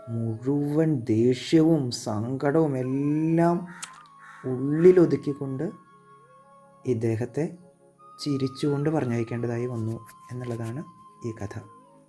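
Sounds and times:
held background music note: 2.7s - 12.0s.

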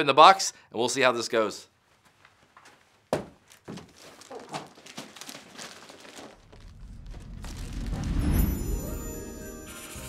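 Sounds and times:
knocks and shuffling on cardboard: 2.6s - 5.2s.

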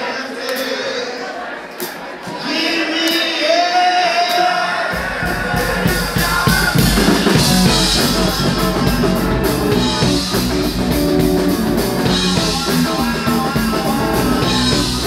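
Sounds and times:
drum kit: 4.3s - 15.0s
bass guitar: 5.0s - 15.0s
electric guitars: 5.0s - 15.0s.

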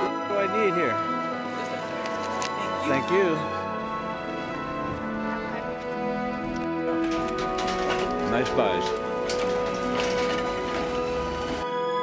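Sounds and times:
background music: 0.0s - 12.0s
shopping cart wheels rattling: 6.8s - 11.6s.

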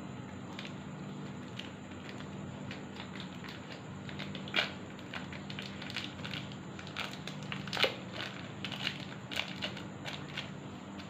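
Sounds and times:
plastic wrapper crinkling: 1.3s - 10.5s.

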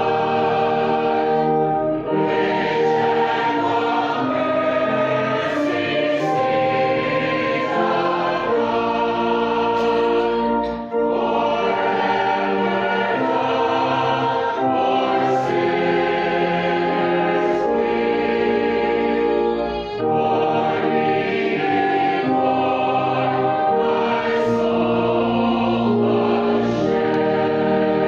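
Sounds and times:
choir singing a hymn: 0.0s - 28.0s.

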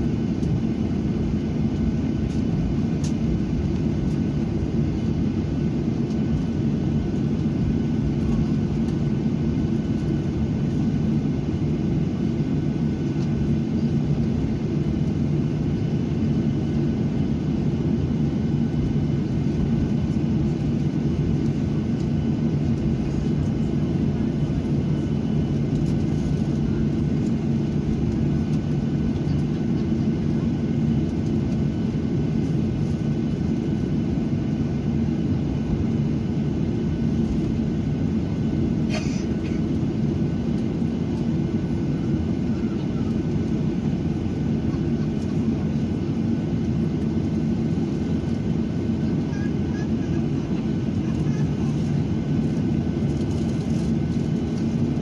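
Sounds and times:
jet engines droning: 0.0s - 55.0s.

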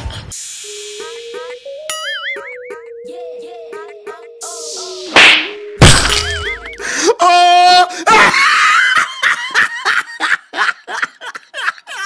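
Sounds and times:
heavy crash and smack hit: 5.2s - 6.7s.

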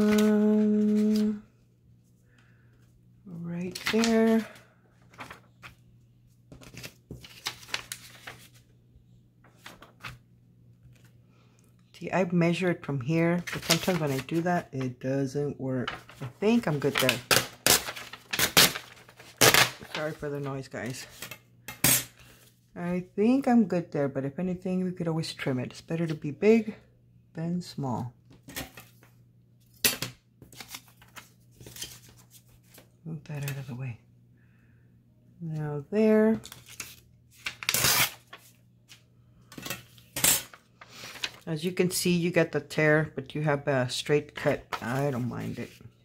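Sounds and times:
paper being handled: 0.0s - 1.4s, 3.6s - 5.8s, 6.5s - 8.7s, 9.4s - 10.2s, 13.4s - 14.8s, 15.8s - 21.3s, 30.4s - 33.7s, 36.4s - 39.0s, 39.6s - 41.5s, 44.4s - 45.9s
paper tearing against ruler: 37.6s - 38.2s.

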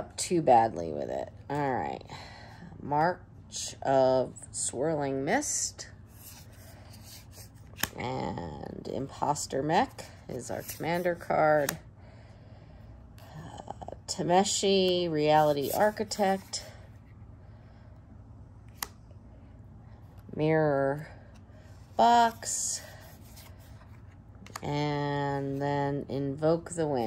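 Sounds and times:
low steady hum: 0.0s - 27.0s
paper cards rubbing and sliding: 6.0s - 8.0s, 9.1s - 11.8s, 15.2s - 16.7s, 22.0s - 24.6s.

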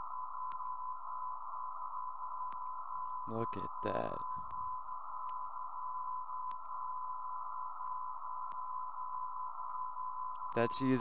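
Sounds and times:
steady radio tone: 0.0s - 11.0s
faint clicks: 0.4s - 0.8s, 2.4s - 2.8s, 4.4s - 5.5s, 6.4s - 6.7s, 8.4s - 8.7s
radio hiss: 3.3s - 5.7s, 10.5s - 11.0s.

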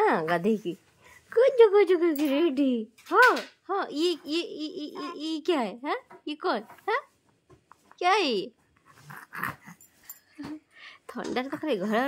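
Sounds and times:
infant grunting: 8.9s - 9.8s.

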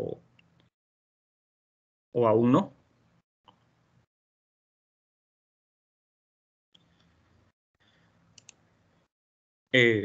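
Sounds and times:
soft computer mouse clicks: 8.3s - 8.6s.

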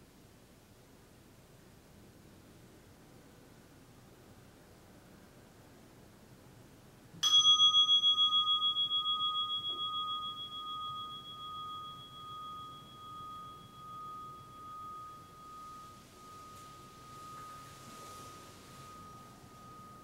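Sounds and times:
meditation bell ringing: 7.2s - 20.0s.

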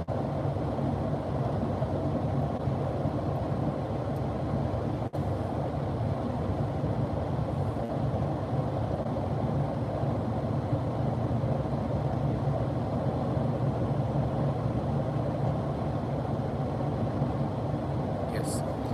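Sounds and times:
road and tyre noise inside car: 0.0s - 18.9s.

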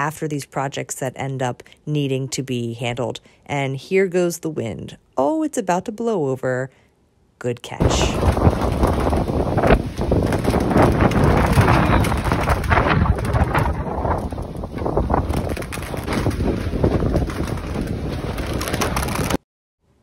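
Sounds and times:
wind buffeting microphone: 7.8s - 19.4s.

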